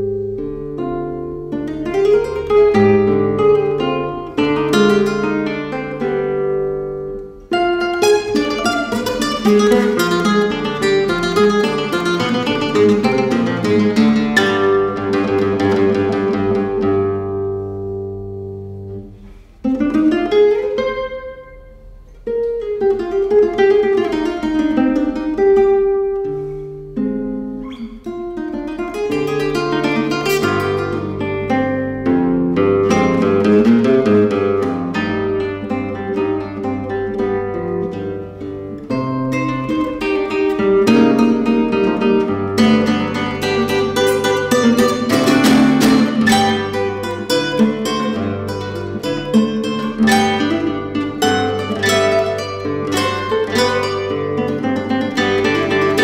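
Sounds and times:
classical guitar fingerpicked melody: 0.0 - 56.0.

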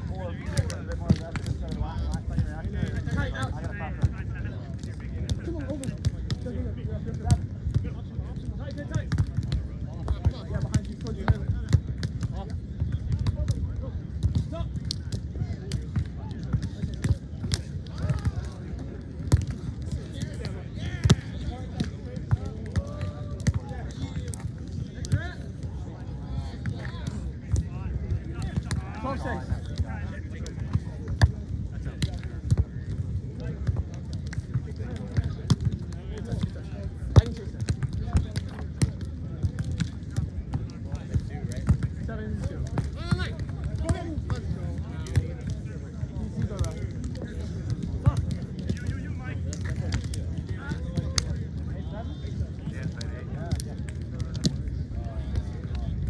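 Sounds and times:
faint voices: 0.0 - 56.0.

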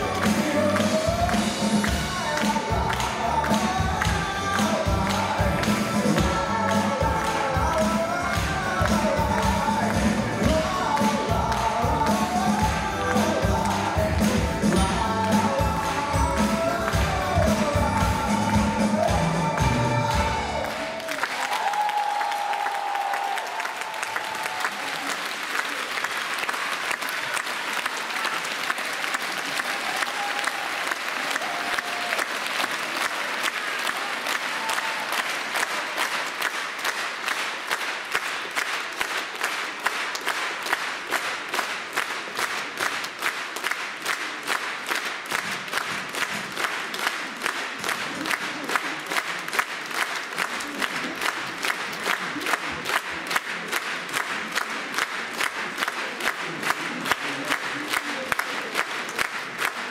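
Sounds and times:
audience applauding: 0.0 - 59.9
rhythmic clapping in unison: 0.0 - 59.9
song with large ensemble: 0.0 - 59.9.

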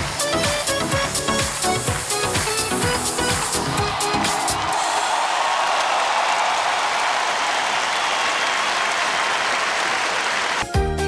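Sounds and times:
audience applause: 0.0 - 10.8.

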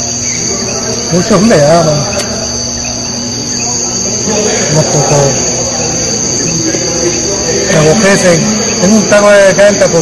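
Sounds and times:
insect chorus: 0.0 - 10.0.

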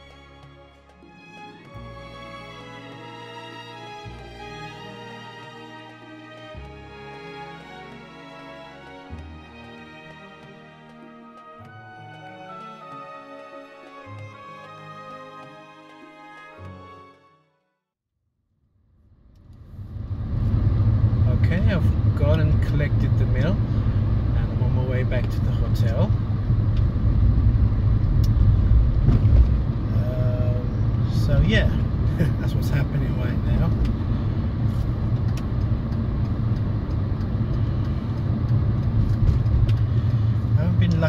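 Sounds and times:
car engine and road drone: 0.0 - 11.6, 18.7 - 41.0.

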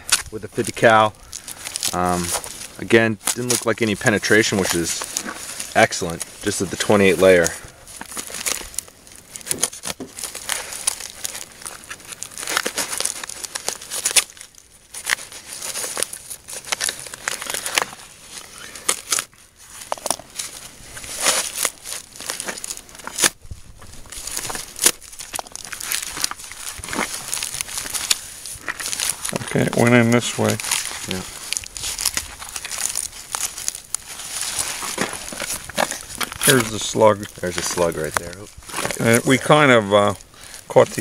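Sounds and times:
fabric and tape tearing: 0.0 - 40.1.

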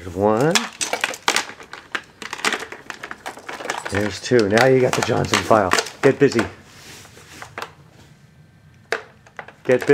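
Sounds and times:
plastic toy parts clicking: 0.4 - 6.4.

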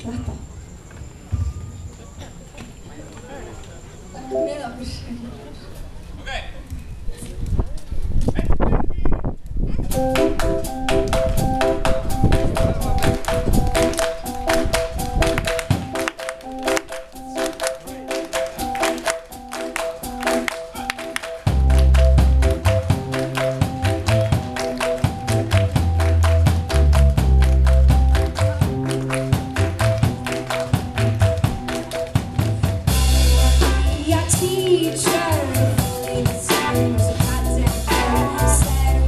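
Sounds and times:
keyboard repeating quick notes: 4.2 - 5.1, 9.9 - 39.0
drum kit beat: 9.9 - 39.0
live band playing upbeat song: 9.9 - 39.0.

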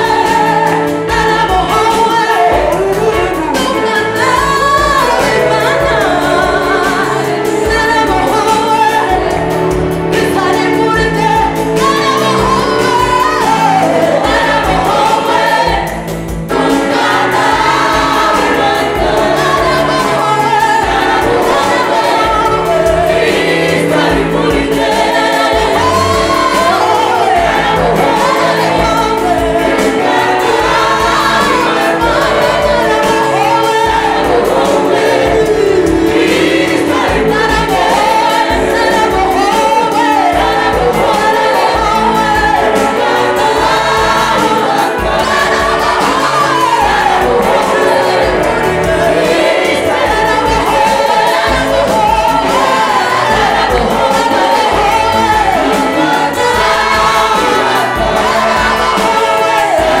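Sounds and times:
amplified band with steady beat: 0.0 - 60.0
choir singing: 0.0 - 60.0.

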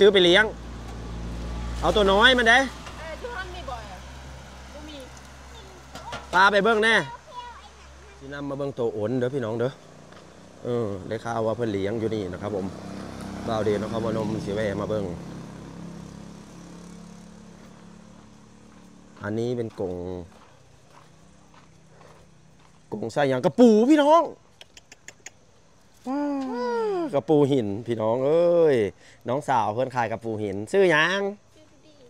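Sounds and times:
vehicle engine humming: 0.0 - 32.0.

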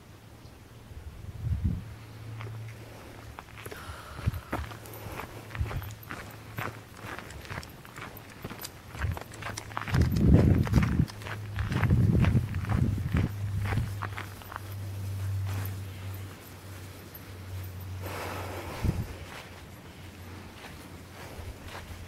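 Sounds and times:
steady low hum: 0.0 - 22.0
low rustling noise: 0.5 - 22.0
footsteps crunching on gravel: 2.4 - 22.0.

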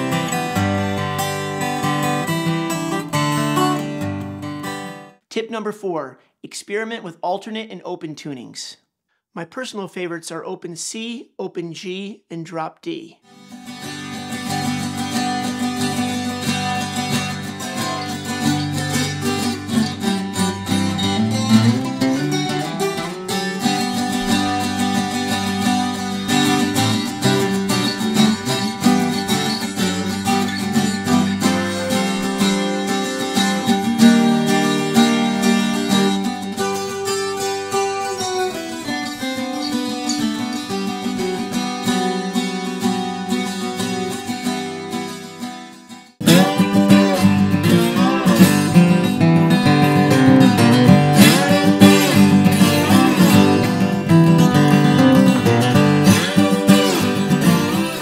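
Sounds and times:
twelve-string guitar ringing chords: 0.0 - 5.1, 13.4 - 45.5, 46.2 - 58.0
acoustic guitar strummed: 0.0 - 5.2, 13.3 - 58.0.

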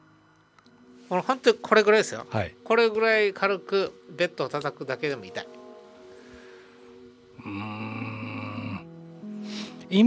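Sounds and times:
soft background music: 0.0 - 10.0
person humming: 7.4 - 9.8.

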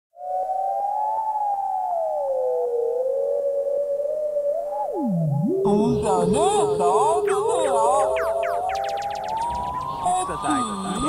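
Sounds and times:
synthesizer tone gliding in pitch: 0.6 - 11.0
warbling electronic sounds: 1.0 - 11.0.

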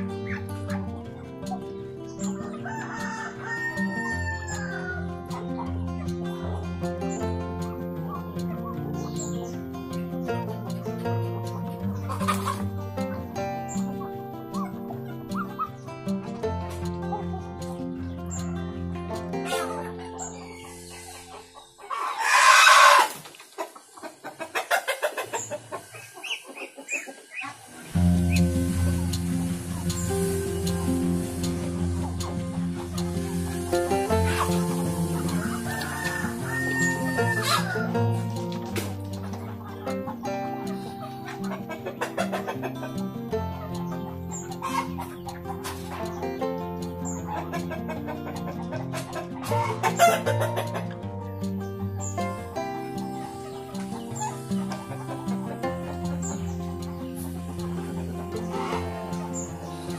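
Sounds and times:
music with held notes: 0.0 - 23.0, 27.8 - 59.9
chickens clucking: 0.0 - 59.9
rooster crowing: 2.6 - 5.2, 21.9 - 23.2, 33.2 - 38.0.

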